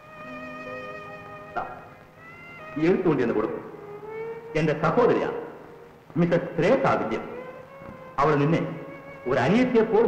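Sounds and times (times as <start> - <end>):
sustained string music: 0.0 - 10.0.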